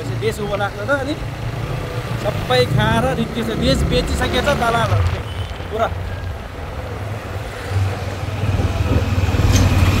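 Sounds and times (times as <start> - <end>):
bus engine rumble: 0.0 - 10.0
street traffic: 0.0 - 10.0.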